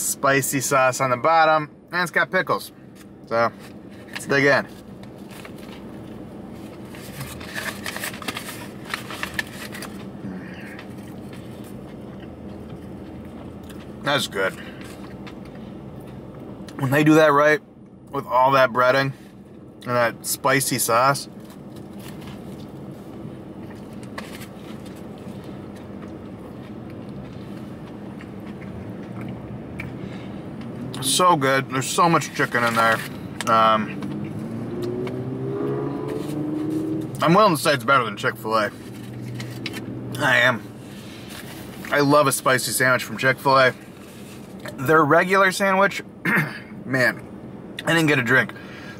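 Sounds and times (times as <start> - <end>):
chewing crunchy fried food: 8.7 - 14.0, 23.6 - 30.0
car cabin hum: 18.2 - 46.1.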